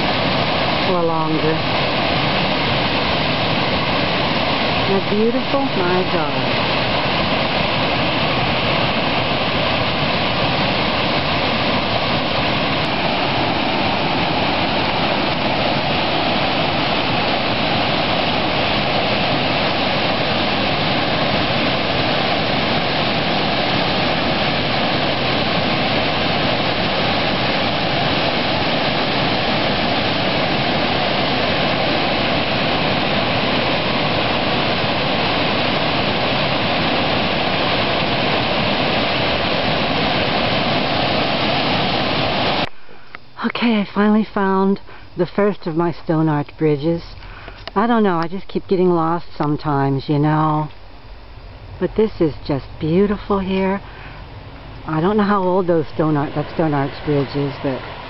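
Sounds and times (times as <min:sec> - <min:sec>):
waterfall rushing over boulders: 0:00.0 - 0:43.1, 0:53.0 - 0:58.0.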